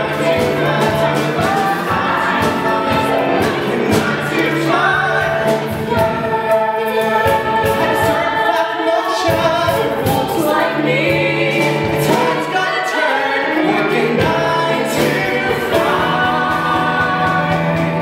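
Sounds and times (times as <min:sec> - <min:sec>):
drums: 0:00.0 - 0:18.0
group of singers singing: 0:00.0 - 0:18.0
piano: 0:00.0 - 0:18.0.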